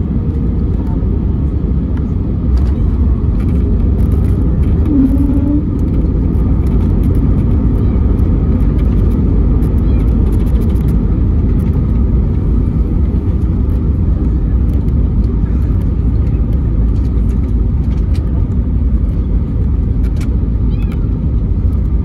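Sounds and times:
airplane wheels and engines rumbling: 0.0 - 22.0.

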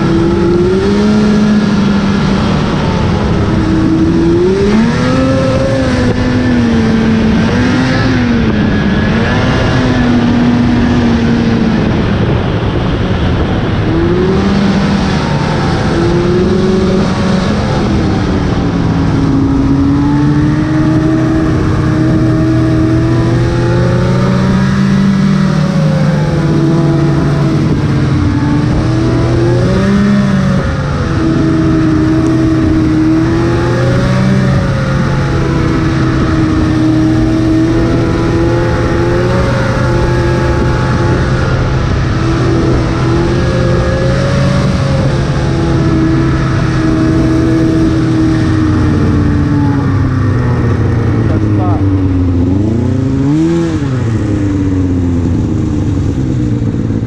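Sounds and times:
snowmobile engine running: 0.0 - 57.0.

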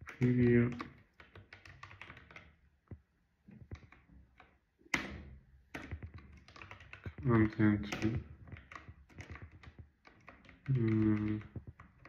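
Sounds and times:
typing on computer keyboard: 0.0 - 2.6, 5.7 - 12.0.

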